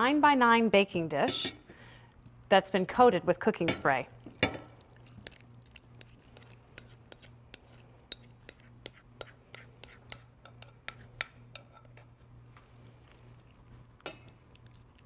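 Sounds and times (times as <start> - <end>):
spatula scraping glass bowl: 5.2 - 12.1.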